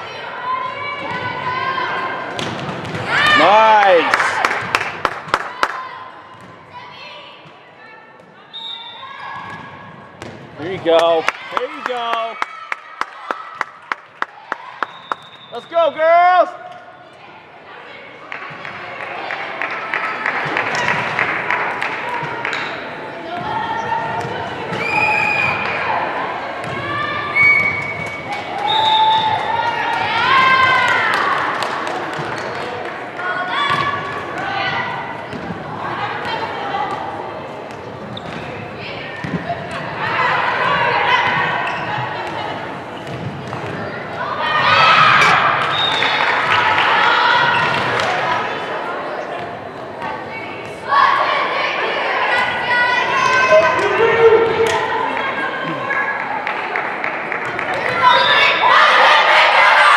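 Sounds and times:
people calling out and cheering: 50.2s - 59.9s.

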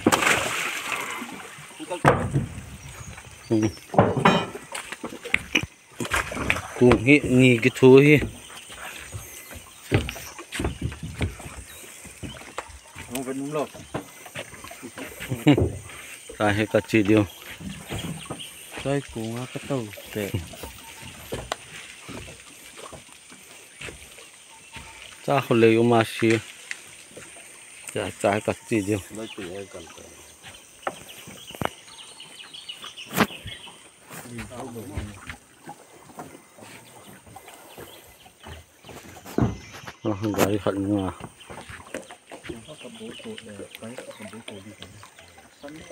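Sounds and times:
faint high wildlife chirping: 0.0s - 45.9s
sharp knocks: 2.0s - 2.6s, 3.9s - 4.7s
knocks and thumps: 2.0s - 2.8s, 3.8s - 7.5s, 9.2s - 13.2s, 13.8s - 16.0s, 17.5s - 18.5s, 38.4s - 40.0s.

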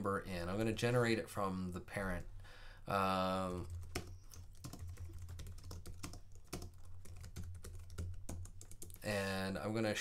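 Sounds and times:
keyboard typing: 3.6s - 9.2s.

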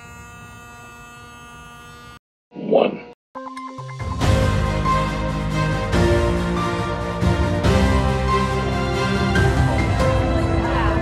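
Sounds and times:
handheld vacuum cleaner hum: 0.0s - 2.2s.

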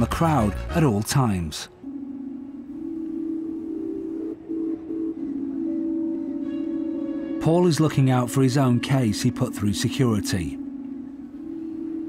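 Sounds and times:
low droning background music: 0.0s - 12.0s.

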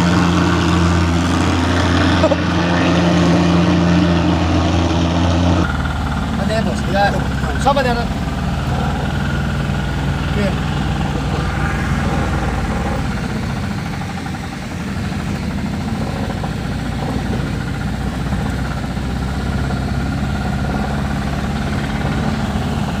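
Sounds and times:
vehicle engine droning: 0.0s - 23.0s.

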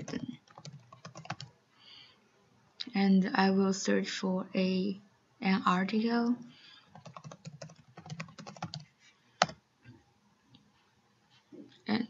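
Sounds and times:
computer keyboard typing: 0.0s - 1.5s, 6.9s - 9.6s.

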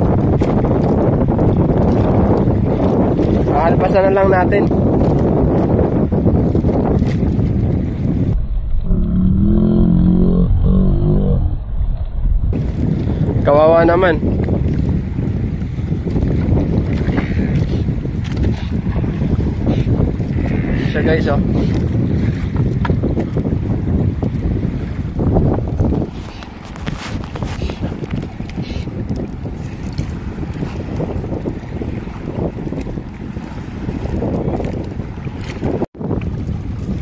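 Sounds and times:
choppy sea water: 0.0s - 37.0s
wind buffeting microphone: 0.0s - 37.0s
muffled wavering pitched sound: 8.3s - 12.6s.

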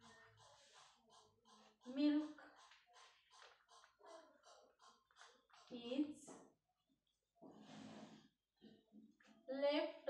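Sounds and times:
chalk scratching on blackboard: 0.0s - 4.6s.

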